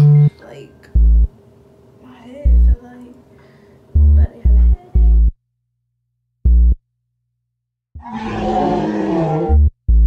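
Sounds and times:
synth bass notes: 1.0s - 1.3s, 2.5s - 2.8s, 4.0s - 5.4s, 6.5s - 6.8s, 9.4s - 10.0s.

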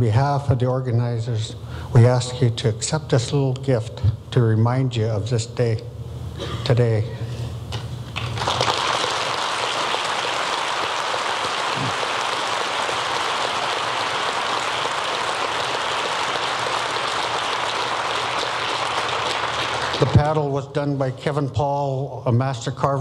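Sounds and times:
audience applauding: 8.2s - 20.5s.

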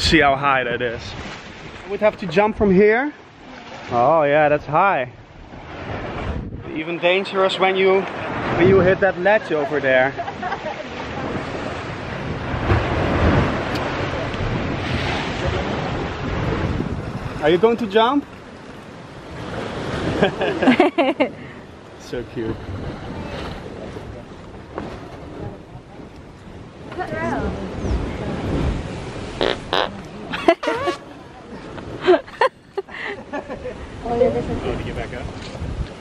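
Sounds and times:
sea waves washing on rocks: 0.0s - 21.0s, 21.6s - 32.1s
wind buffeting microphone: 5.2s - 7.1s, 8.0s - 9.4s, 10.2s - 20.5s, 22.2s - 32.0s, 33.6s - 36.0s.

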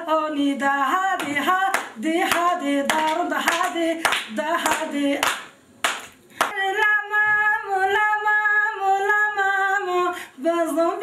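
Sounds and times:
woman singing folk song: 0.0s - 5.5s, 6.4s - 11.0s
hands clapping: 1.2s - 6.6s.

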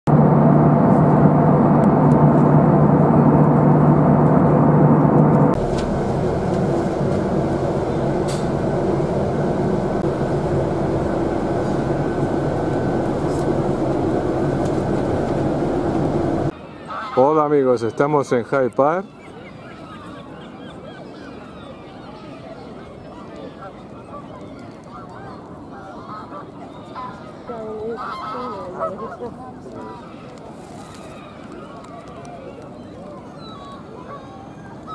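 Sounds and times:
bus engine and road rumble: 0.1s - 16.5s
airliner cabin jet engine drone: 0.1s - 16.6s
geese honking: 16.9s - 17.4s, 27.8s - 29.3s.

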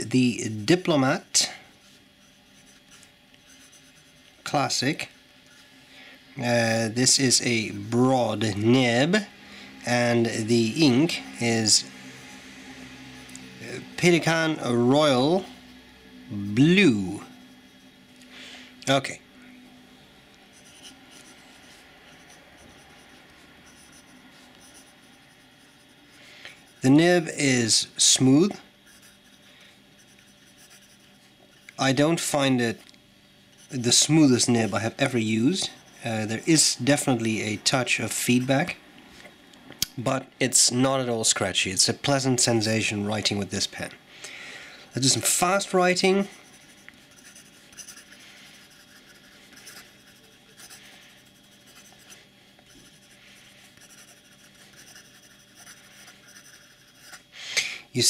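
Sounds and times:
fountain pen scratching on paper: 2.2s - 4.4s, 20.5s - 27.0s, 30.0s - 31.8s, 46.2s - 57.3s.

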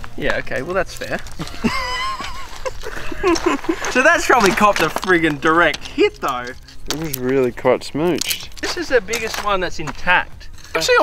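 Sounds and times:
man laughing: 1.3s - 4.4s
man speaking: 3.9s - 11.0s.

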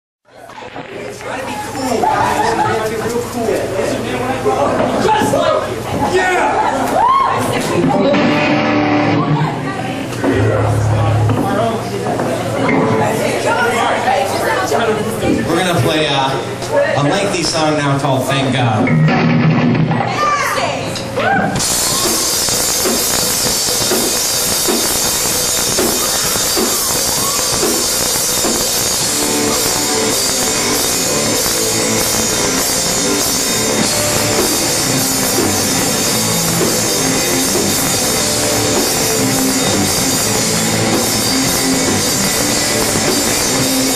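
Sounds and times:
crowd chatter: 0.2s - 43.9s
live rock band playing loudly: 7.8s - 9.6s, 18.8s - 20.1s, 21.6s - 43.9s
electric guitar note ringing: 8.0s - 9.6s, 10.2s - 12.0s, 21.6s - 43.9s.

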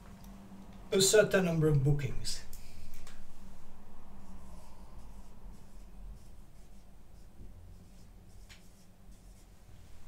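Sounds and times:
marker scratching on whiteboard: 4.2s - 9.6s.

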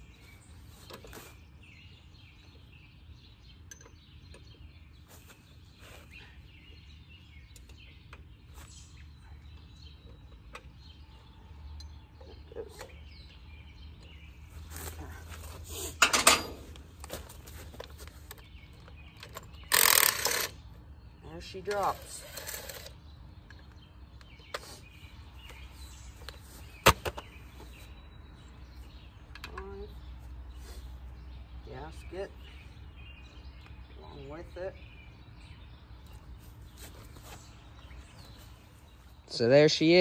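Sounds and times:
birds chirping: 0.0s - 40.0s
wrench clanking on metal parts: 16.0s - 16.8s.

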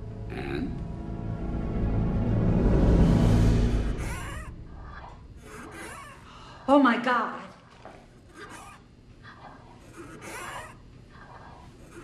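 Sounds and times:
machine squeaking and rubbing: 3.8s - 6.2s, 8.3s - 8.8s, 9.8s - 10.8s, 11.4s - 12.0s.

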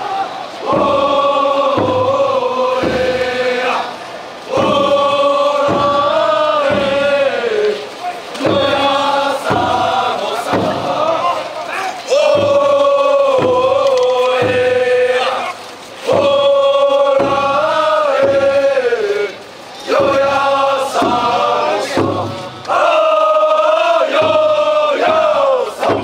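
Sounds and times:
men chanting in unison: 0.0s - 26.0s
low thuds: 8.3s - 11.4s.

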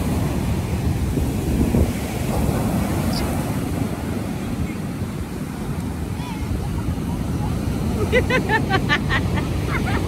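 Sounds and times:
surf washing up beach: 0.0s - 10.0s
wind rumbling on microphone: 0.0s - 10.0s.

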